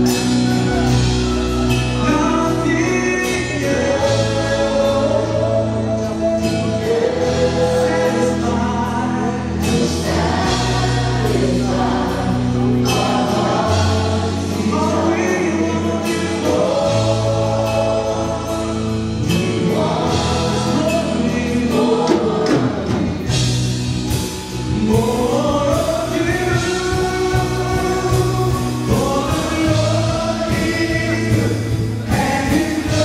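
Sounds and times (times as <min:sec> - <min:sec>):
long low bass notes: 0:00.0 - 0:33.0
worship band playing and singing: 0:00.0 - 0:33.0.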